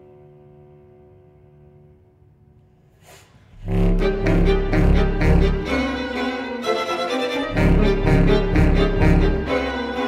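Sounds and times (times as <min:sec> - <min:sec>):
chamber ensemble loud chord: 0:03.6 - 0:06.7, 0:07.3 - 0:10.0.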